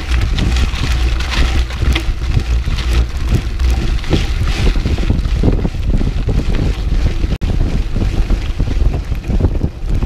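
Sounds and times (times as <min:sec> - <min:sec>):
bike tyres on dirt road: 0:00.0 - 0:10.0
gravel and bike rattles: 0:00.0 - 0:10.0
wind rumbling on microphone: 0:00.0 - 0:10.0.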